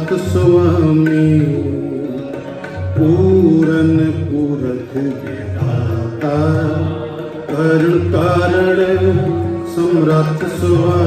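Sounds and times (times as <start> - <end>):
harmoniums playing: 0.0 - 11.0
man singing: 0.0 - 11.0
tabla: 0.0 - 11.0.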